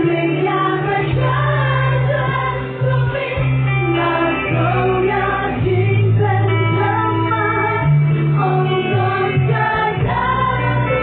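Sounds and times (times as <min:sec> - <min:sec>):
acoustic guitar: 0:00.0 - 0:11.0
women singing gospel song: 0:00.0 - 0:11.0.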